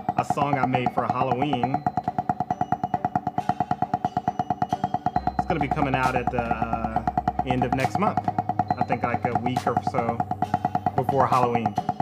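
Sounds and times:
backing track music: 0.0s - 12.0s
drumsticks on practice pad: 0.0s - 12.0s.

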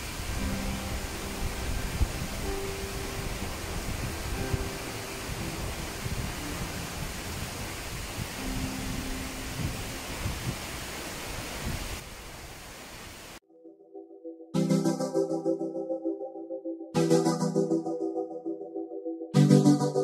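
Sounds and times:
wind buffeting microphone: 0.0s - 13.2s
waterfall roaring: 0.0s - 13.4s.

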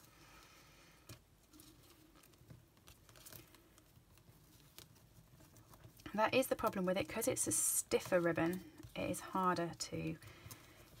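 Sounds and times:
ribbon and paper rustling: 1.0s - 11.0s.

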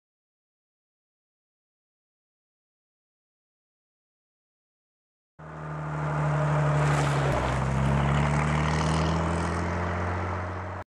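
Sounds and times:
car engine driving past: 5.4s - 10.8s.

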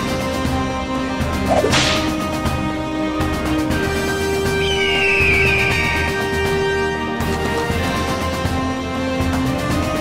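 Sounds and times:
background music: 0.0s - 10.0s
swish sound effect: 1.5s - 2.3s.

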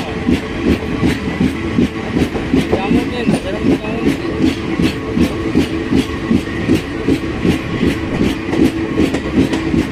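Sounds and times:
train running rumble: 0.0s - 9.9s.

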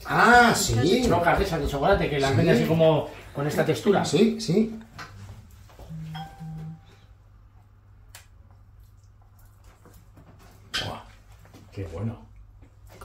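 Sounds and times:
steady low hum: 4.1s - 9.6s
person humming mm-mm: 5.9s - 6.9s.

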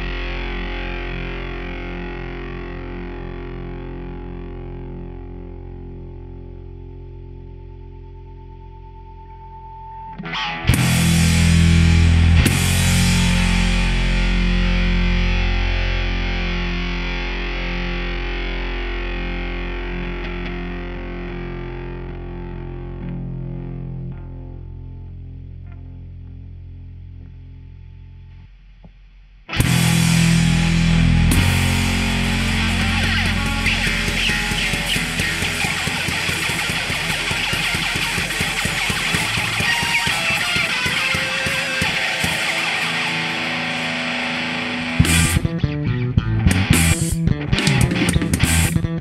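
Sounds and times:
bass and drums: 0.0s - 8.3s, 10.7s - 20.9s, 26.6s - 49.0s
distorted electric guitar chord: 0.0s - 27.0s, 29.5s - 49.0s.

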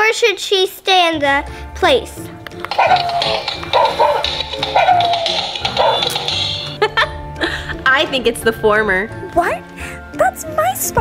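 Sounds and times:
background music: 0.0s - 11.0s
toy dog electronic yips: 2.7s - 6.7s.

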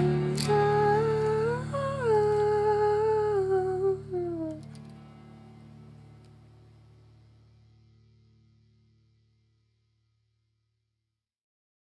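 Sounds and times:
person humming: 0.0s - 4.7s
ringing guitar chord: 0.0s - 8.9s.

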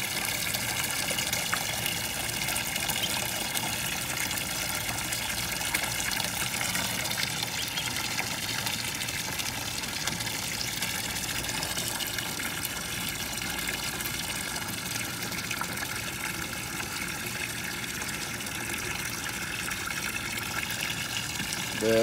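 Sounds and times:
water running into plastic tub: 0.0s - 22.0s.

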